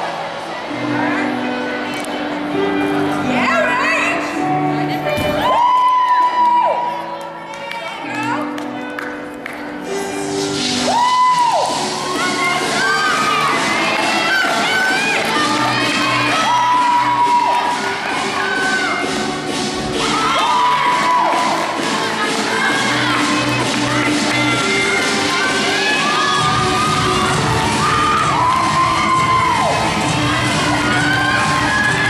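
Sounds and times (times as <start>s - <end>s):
gymnastics routine music: 0.0s - 32.0s
people cheering and shouting: 5.1s - 8.4s, 10.7s - 32.0s.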